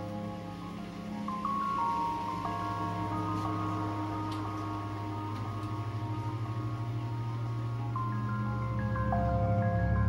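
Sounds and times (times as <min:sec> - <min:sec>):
low pulsing drone: 0:00.0 - 0:10.0.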